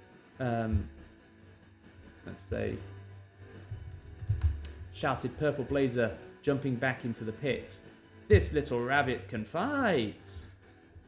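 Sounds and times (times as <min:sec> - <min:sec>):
quiet background music: 0:00.0 - 0:11.0
keyboard typing: 0:03.7 - 0:04.8.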